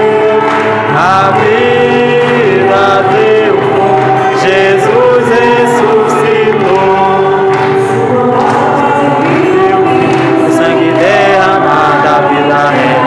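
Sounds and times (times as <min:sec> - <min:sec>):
group singing a hymn: 0:00.0 - 0:13.0.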